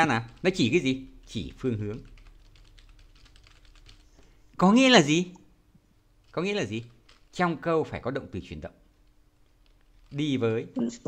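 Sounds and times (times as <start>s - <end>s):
keyboard typing: 0.0s - 4.3s, 6.2s - 7.7s, 9.0s - 10.4s.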